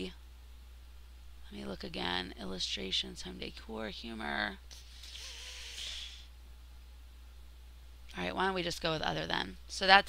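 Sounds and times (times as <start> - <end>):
person sighing: 4.8 - 6.3.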